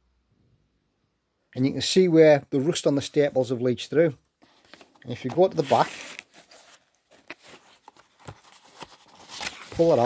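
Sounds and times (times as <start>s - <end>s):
paper rustling: 4.4s - 10.0s.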